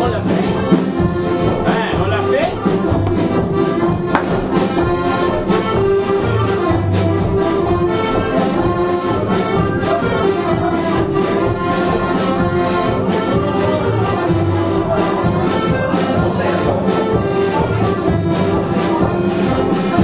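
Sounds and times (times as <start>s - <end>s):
instrumental folk dance tune: 0.0s - 20.0s.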